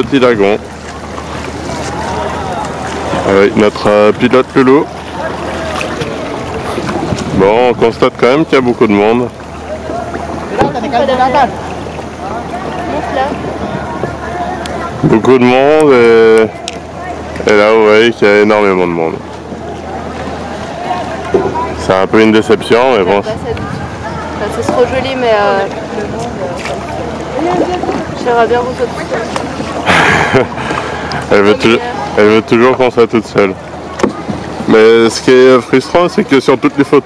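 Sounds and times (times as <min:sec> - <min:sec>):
faint distant voices: 0:00.0 - 0:37.0
water around kayak: 0:00.0 - 0:37.0
wind on microphone: 0:05.2 - 0:08.1, 0:23.0 - 0:26.8.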